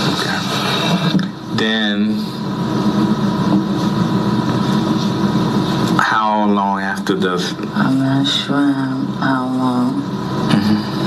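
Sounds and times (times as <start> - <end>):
loud steady hum: 0.0 - 11.0
tape hiss: 0.0 - 11.0.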